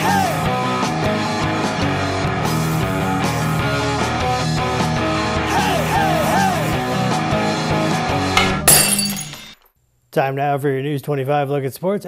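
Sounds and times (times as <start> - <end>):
rock guitar music: 0.2 - 8.6.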